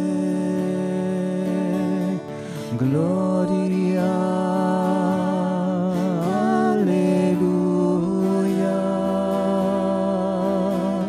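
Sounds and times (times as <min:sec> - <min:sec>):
soft instrumental accompaniment: 0:00.0 - 0:11.0.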